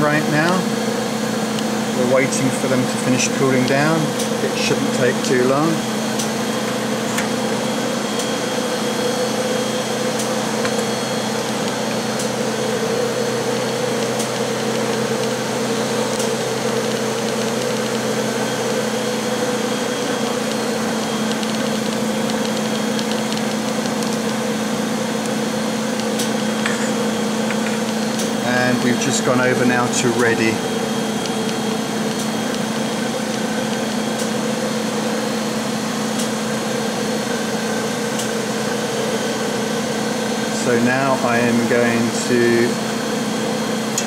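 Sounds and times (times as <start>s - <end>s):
machine hum: 0.0s - 44.0s.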